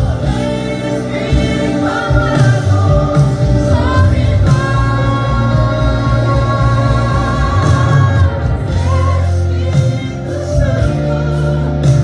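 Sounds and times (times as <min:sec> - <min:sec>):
woman singing gospel: 0:00.2 - 0:12.0.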